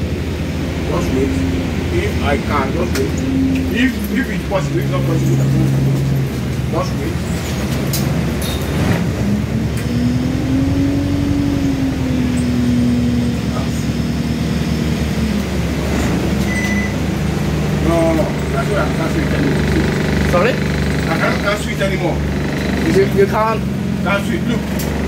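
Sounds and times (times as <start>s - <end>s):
bus diesel engine running: 0.0s - 25.0s.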